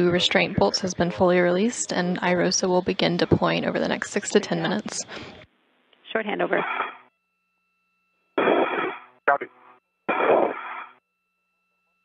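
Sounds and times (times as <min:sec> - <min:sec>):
radio voice bursts: 0:06.4 - 0:07.0, 0:08.4 - 0:11.0.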